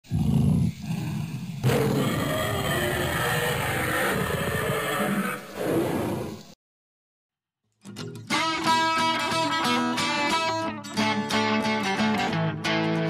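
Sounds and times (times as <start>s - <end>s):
loud rough roaring: 0.1s - 6.4s.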